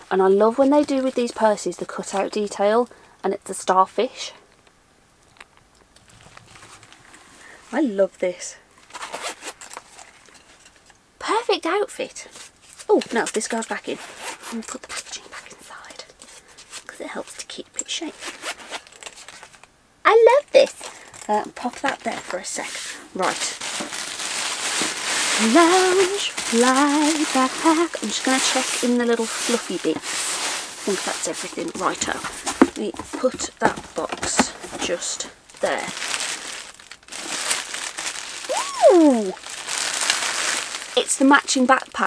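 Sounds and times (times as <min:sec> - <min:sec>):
plastic bag crinkling: 0:00.3 - 0:02.8, 0:18.1 - 0:19.7, 0:20.6 - 0:42.0
paper rustling: 0:21.6 - 0:41.0.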